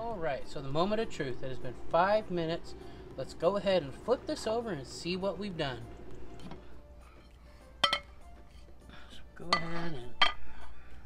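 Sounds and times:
plate clinking against skillet: 0:07.8 - 0:08.2.

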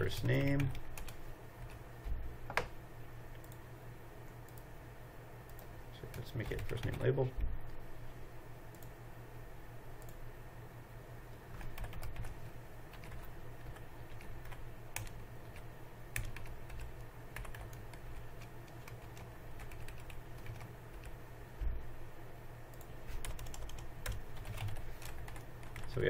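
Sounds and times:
low steady hum: 0:00.0 - 0:26.0
keyboard typing: 0:00.2 - 0:01.8, 0:11.5 - 0:21.2, 0:22.7 - 0:25.9.

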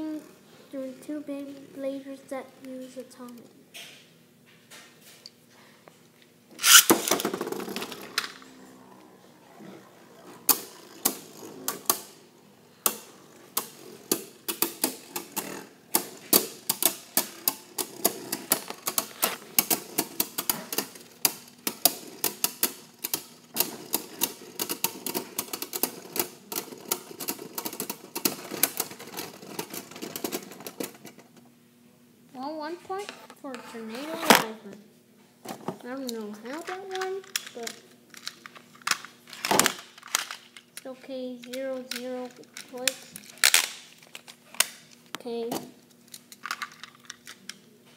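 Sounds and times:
spinning top launch whirring rip: 0:06.6 - 0:07.9
spinning tops clacking: 0:06.6 - 0:08.3
spinning tops whirring: 0:06.6 - 0:08.4, 0:10.0 - 0:31.2.

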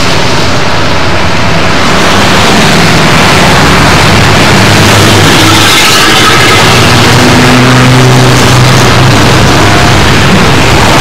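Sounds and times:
vehicle engine passing: 0:01.3 - 0:11.0.

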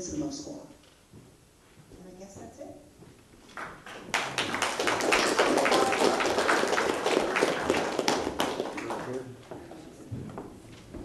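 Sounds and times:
audience applause: 0:03.8 - 0:09.4.

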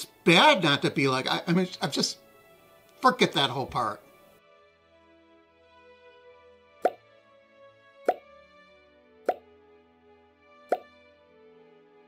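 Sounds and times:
soft background music: 0:00.0 - 0:12.0
pop sound effects: 0:06.8 - 0:07.0, 0:08.0 - 0:08.3, 0:09.2 - 0:09.5, 0:10.7 - 0:10.9.

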